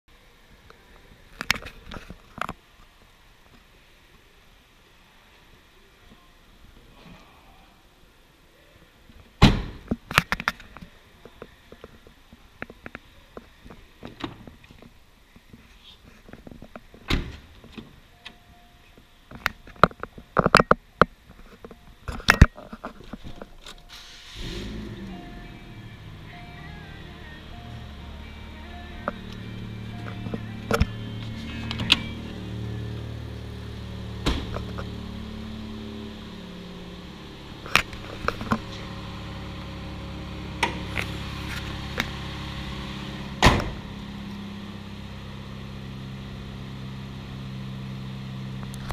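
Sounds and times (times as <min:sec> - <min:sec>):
car engine starting and idling: 0:23.1 - 0:48.9
dashboard chime beeping: 0:25.0 - 0:33.0.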